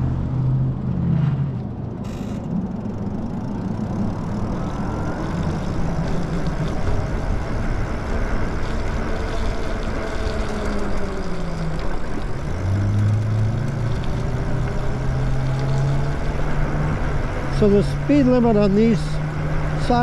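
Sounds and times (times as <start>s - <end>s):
low motor hum: 0.0s - 20.0s
tyres on wet pavement: 0.0s - 20.0s.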